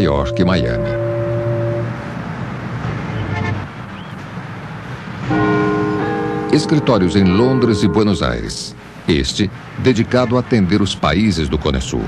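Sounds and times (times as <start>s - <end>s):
city street traffic: 0.0s - 12.0s
car horn toot: 0.2s - 2.2s
held chord of background music: 5.3s - 8.9s.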